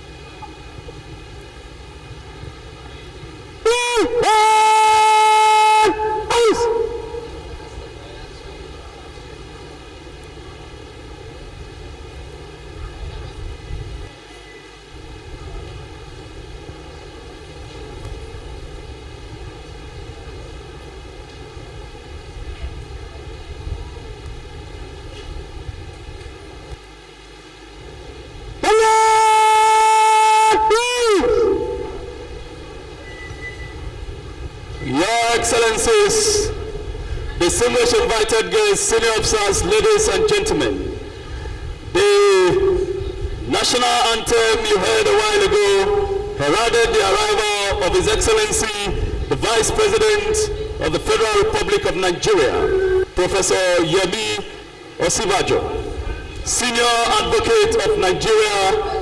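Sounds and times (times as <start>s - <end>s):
open-air background noise: 0.0s - 59.0s.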